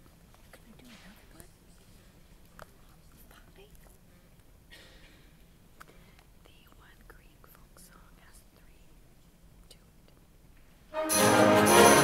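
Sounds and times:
faint whispering: 0:00.4 - 0:04.3, 0:05.9 - 0:10.3.

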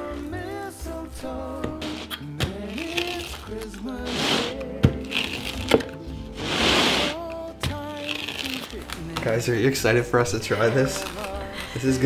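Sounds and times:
background music: 0:00.0 - 0:12.0
pizza cutter crunching crust: 0:01.8 - 0:05.8, 0:06.4 - 0:09.4.

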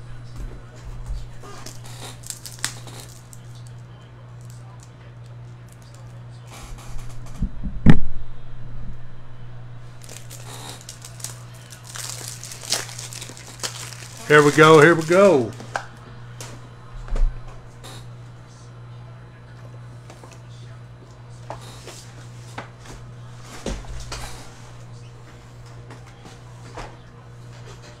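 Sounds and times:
steady low hum: 0:00.0 - 0:28.0
crinkling and rustling: 0:01.2 - 0:03.8, 0:09.9 - 0:15.8.

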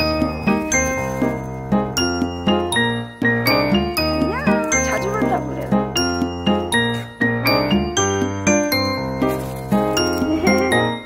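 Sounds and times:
light music with bell-like notes: 0:00.0 - 0:11.0
dog whining: 0:04.3 - 0:05.1.

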